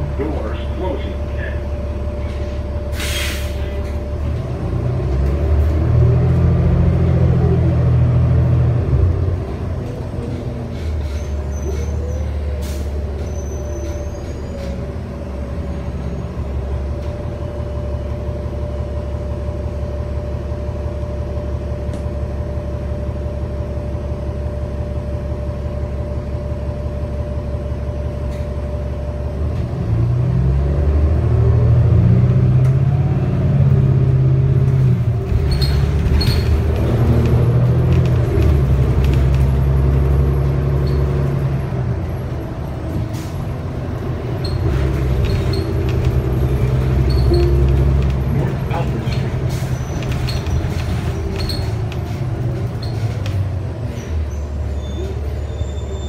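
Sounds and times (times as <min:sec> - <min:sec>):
bus diesel engine rumbling: 0:00.0 - 0:56.0.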